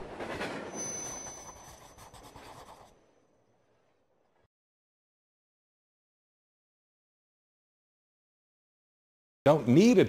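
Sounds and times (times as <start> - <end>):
wheels squealing on rail: 0.3 - 1.8.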